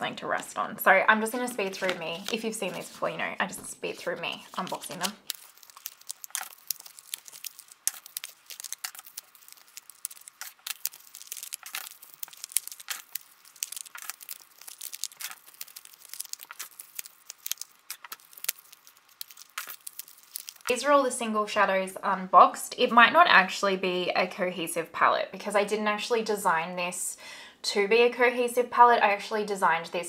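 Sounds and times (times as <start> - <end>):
cardboard packages crinkling: 1.2 - 20.8.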